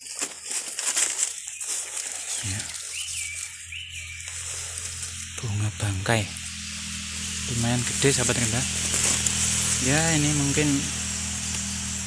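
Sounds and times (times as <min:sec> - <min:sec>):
forest background hiss: 0:00.1 - 0:12.0
bird whistling: 0:01.3 - 0:05.0.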